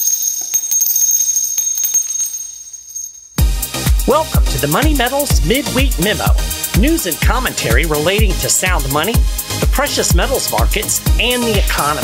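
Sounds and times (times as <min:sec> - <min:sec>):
bells jingling: 0:00.0 - 0:07.0.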